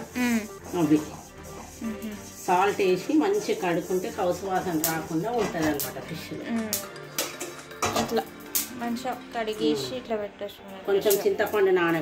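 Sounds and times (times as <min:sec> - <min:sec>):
background music: 0:00.0 - 0:12.0
steel bowl clinking: 0:04.8 - 0:08.8.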